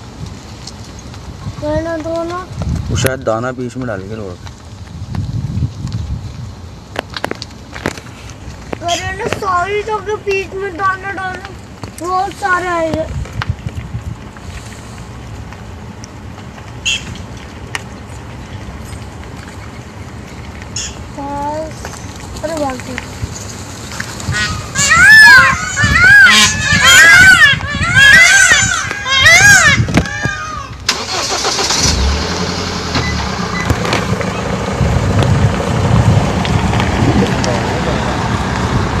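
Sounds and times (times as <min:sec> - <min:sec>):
low wind rumble: 0:00.0 - 0:39.0
vehicle engine and road noise: 0:00.0 - 0:39.0.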